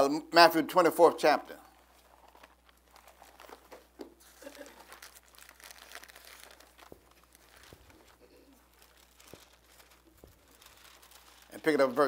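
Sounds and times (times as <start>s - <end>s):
thin pages rustling: 1.7s - 12.0s.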